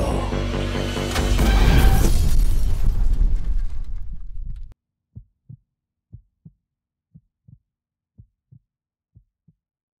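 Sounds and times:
heartbeat thumps: 5.1 - 7.6.

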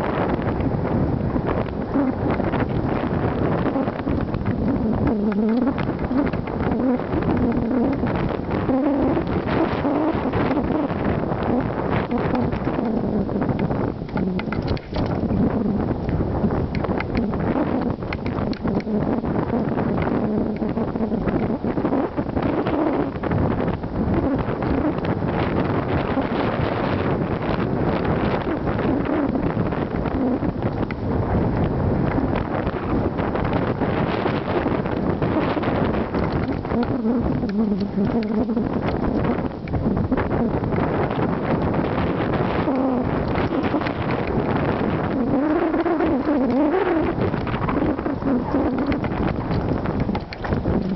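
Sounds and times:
wind buffeting microphone: 0.0 - 50.9.

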